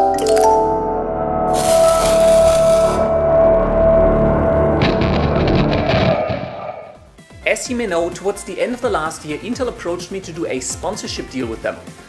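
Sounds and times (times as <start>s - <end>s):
textured sound effect: 1.5s - 7.1s.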